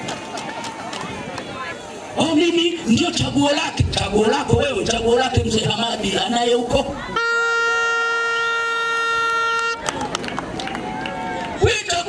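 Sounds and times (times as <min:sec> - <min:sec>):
crowd voices: 0:00.0 - 0:12.0
horn long steady note: 0:07.1 - 0:09.9.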